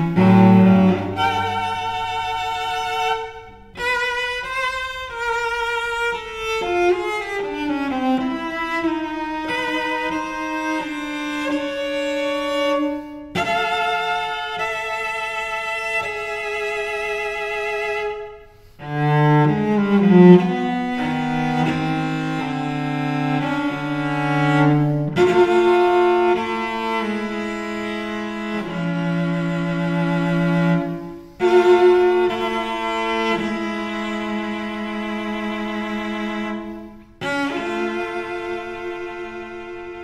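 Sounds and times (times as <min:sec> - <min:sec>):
cello bowing double stops: 0:00.0 - 0:40.0.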